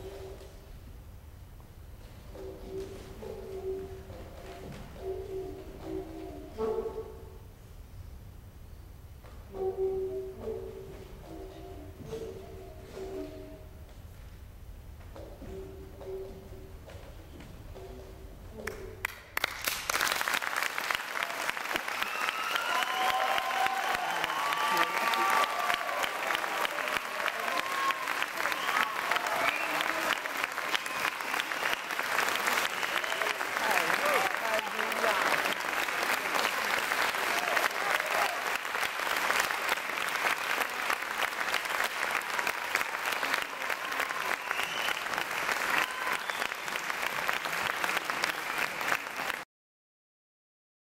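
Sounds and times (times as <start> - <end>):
audience applause: 19.0 - 49.4.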